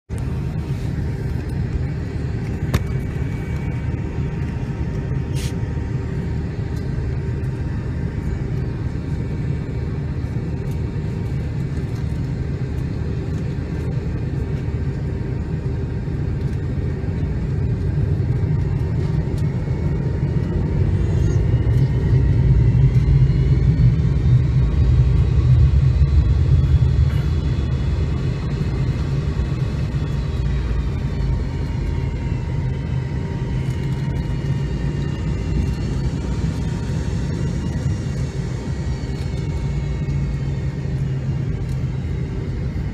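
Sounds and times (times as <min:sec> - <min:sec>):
jet engine low rumble: 0:00.0 - 0:42.9
rising engine whine: 0:00.1 - 0:42.9.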